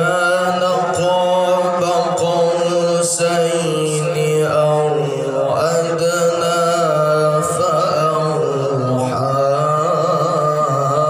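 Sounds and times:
man reciting melodically: 0.0s - 11.0s.

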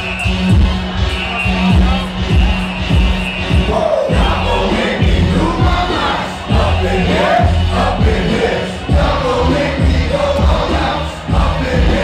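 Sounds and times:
crowd shouting and singing along: 0.0s - 12.0s
loud music with bass and kick drum: 0.0s - 12.0s.

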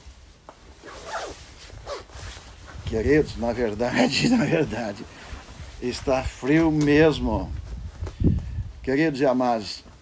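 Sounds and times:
jacket zipper pulled up: 0.7s - 2.8s.

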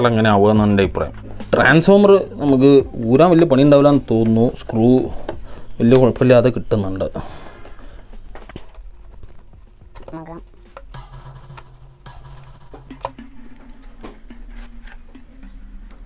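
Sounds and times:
faint high whine: 0.0s - 16.0s.

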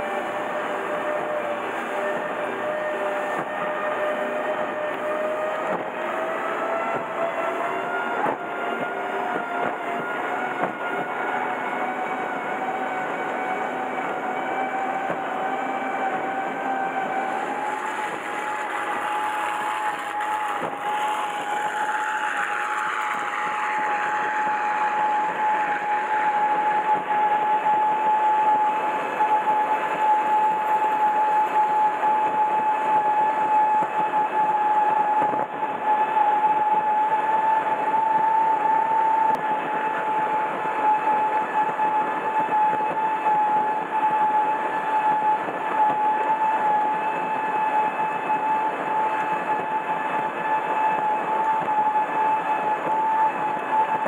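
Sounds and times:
powerboat engine droning: 0.0s - 54.0s.

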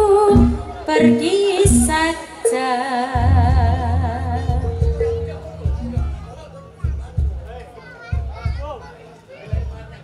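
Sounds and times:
deep drum strikes: 3.2s - 7.5s.

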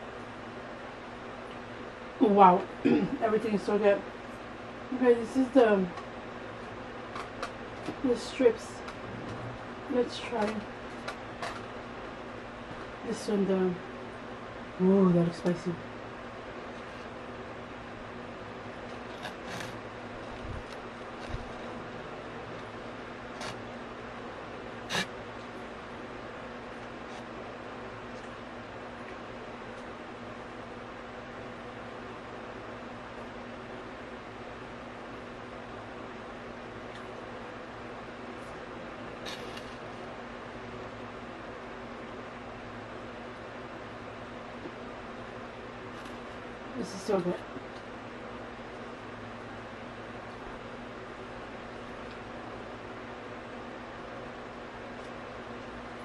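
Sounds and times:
room hum: 0.0s - 56.0s.

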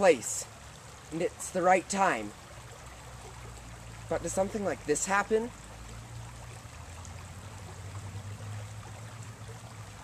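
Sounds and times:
river water flowing: 0.0s - 10.0s.

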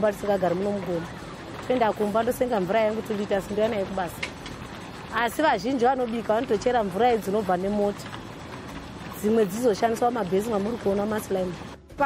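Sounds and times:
woman speaking: 0.0s - 4.3s, 5.1s - 8.1s, 9.1s - 12.0s.

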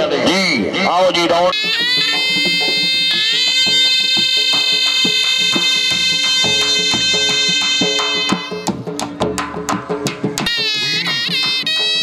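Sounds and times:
shehnai horns holding a note: 1.5s - 8.7s, 10.5s - 12.0s
dhol drum beating: 1.5s - 12.0s.

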